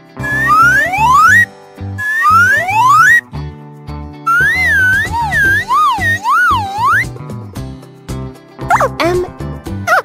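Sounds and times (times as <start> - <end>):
children's background music: 0.0 - 10.0
cartoon whistle swooping: 0.2 - 3.2, 4.3 - 7.1.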